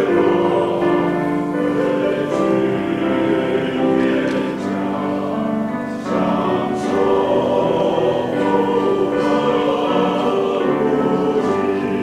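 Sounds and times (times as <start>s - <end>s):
men's choir singing a hymn: 0.0s - 12.0s.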